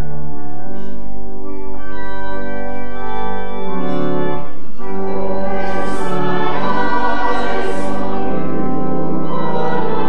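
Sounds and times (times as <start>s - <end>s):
organ accompaniment: 0.0s - 10.0s
congregation and choir singing hymn: 3.9s - 10.0s.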